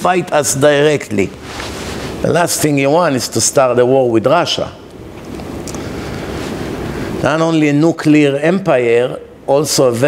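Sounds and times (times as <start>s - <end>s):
air rushing on microphone: 1.1s - 3.2s, 5.4s - 7.8s.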